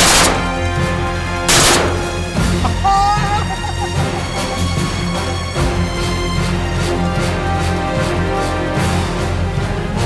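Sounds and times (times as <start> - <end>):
shotgun shots: 0.0 - 0.7, 1.5 - 2.3
background music: 0.0 - 10.0.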